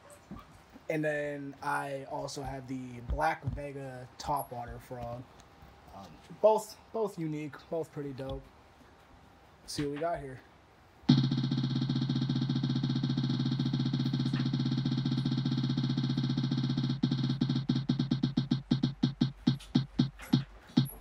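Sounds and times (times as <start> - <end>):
prize wheel ticking: 11.1 - 21.0.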